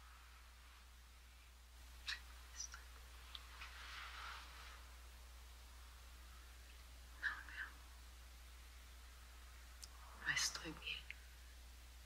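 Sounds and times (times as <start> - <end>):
steady low hum: 0.0 - 12.0
person whispering: 2.0 - 2.9, 7.2 - 7.8, 10.1 - 11.2.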